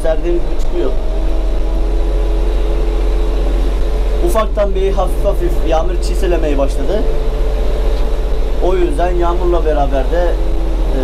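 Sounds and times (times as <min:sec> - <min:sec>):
tractor diesel engine drone: 0:00.0 - 0:11.0.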